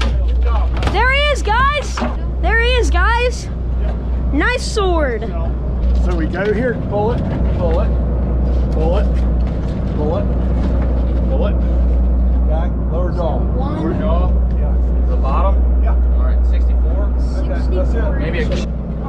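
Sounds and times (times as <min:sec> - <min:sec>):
boat engine droning: 0:00.0 - 0:19.0.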